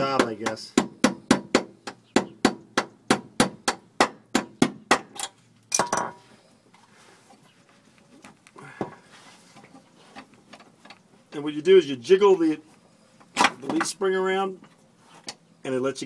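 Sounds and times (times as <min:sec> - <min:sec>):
hammer clattering on concrete floor: 0:05.0 - 0:06.2.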